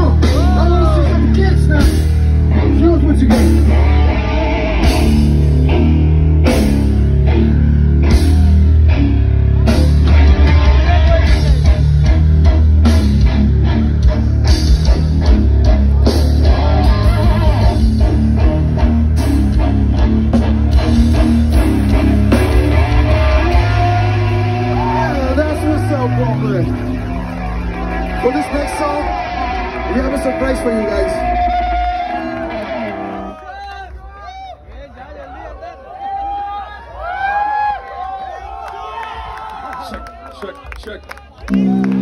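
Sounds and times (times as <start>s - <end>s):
live rock band playing: 0.0s - 33.4s, 41.5s - 42.0s.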